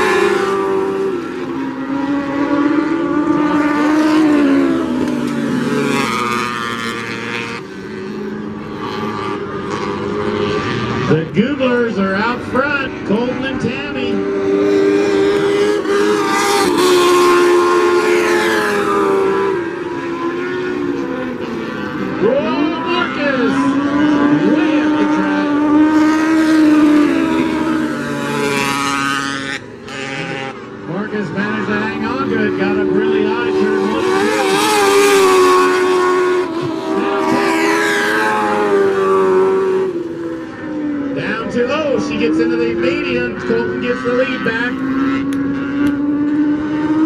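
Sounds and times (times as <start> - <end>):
race car engines passing: 0.0 - 47.0.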